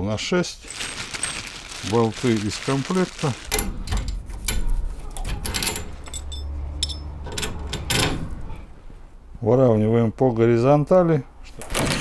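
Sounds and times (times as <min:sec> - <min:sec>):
metal bracket and bolts clinking: 0:03.5 - 0:08.2.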